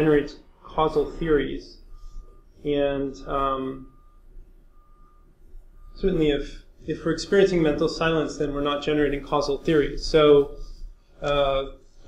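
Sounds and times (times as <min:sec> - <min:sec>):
high-pitched electronic beeps: 0:00.0 - 0:12.0
room hum: 0:00.0 - 0:12.0.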